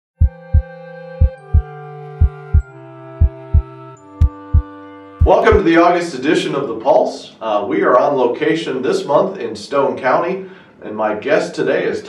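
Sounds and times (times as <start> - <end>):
heartbeat thumps: 0.2 - 5.6
held musical chord: 0.2 - 5.9.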